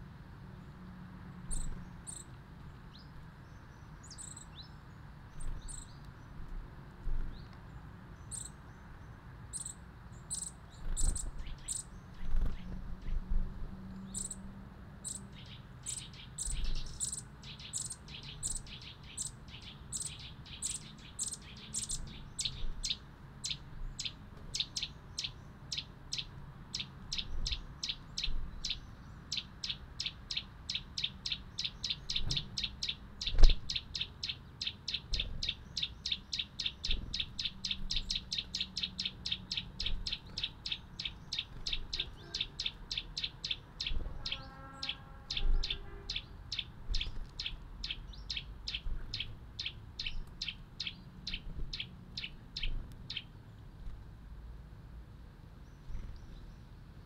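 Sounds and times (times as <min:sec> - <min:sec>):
songbird chirping: 0:00.5 - 0:53.7.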